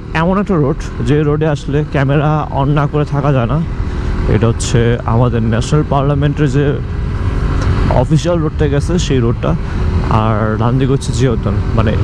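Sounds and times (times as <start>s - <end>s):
motorcycle engine running: 0.0s - 12.0s
man talking: 0.1s - 6.9s, 7.8s - 12.0s.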